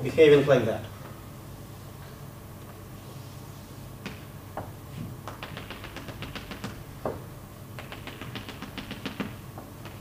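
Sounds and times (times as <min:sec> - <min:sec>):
chalk tapping on a blackboard: 0:04.0 - 0:07.2, 0:07.8 - 0:10.0.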